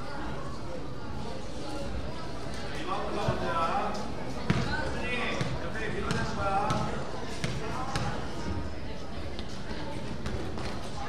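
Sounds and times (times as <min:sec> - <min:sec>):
basketball bouncing on gym floor: 0:05.4 - 0:08.2.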